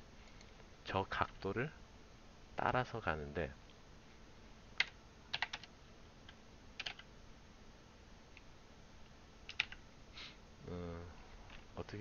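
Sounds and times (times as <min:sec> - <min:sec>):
computer keyboard keystrokes: 0:04.8 - 0:05.7, 0:06.3 - 0:07.1, 0:09.5 - 0:09.8.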